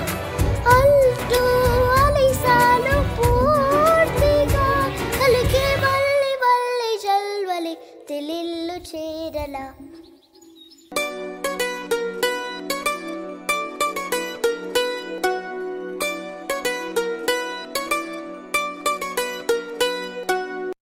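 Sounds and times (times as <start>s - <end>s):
plucked string melody: 0.0s - 6.1s, 10.9s - 20.8s.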